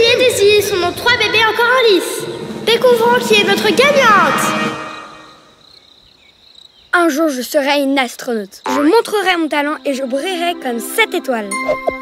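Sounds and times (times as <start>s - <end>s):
voice echo: 0.0s - 5.6s
crickets chirping: 0.0s - 11.6s.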